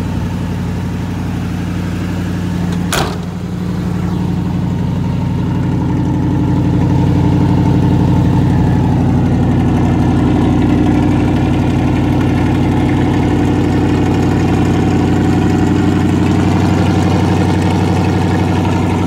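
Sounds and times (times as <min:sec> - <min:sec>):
pickup engine idling: 0:00.0 - 0:19.0.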